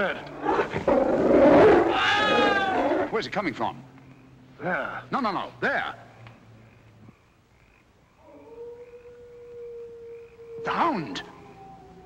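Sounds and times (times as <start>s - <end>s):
hound howling: 0.6s - 3.2s, 8.2s - 12.0s.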